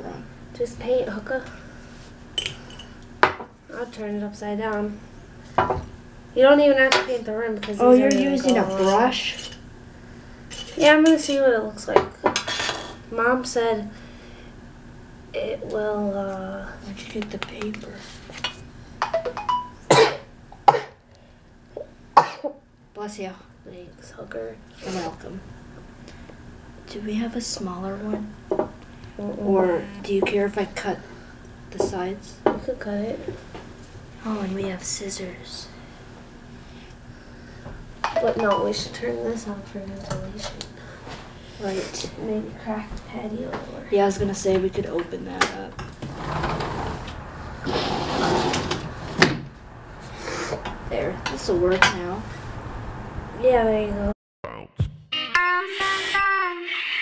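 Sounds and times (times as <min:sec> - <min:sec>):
sliding door rolling scrape: 0:46.0 - 0:49.2
sliding door clack: 0:46.0 - 0:49.4.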